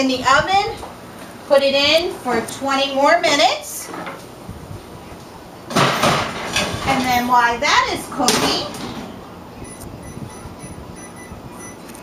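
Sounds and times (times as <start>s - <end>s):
short electronic beeps: 9.6s - 11.9s.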